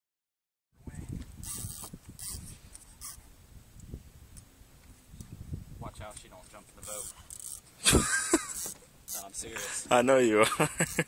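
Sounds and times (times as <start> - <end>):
wind rumble on microphone: 0.8 - 6.6.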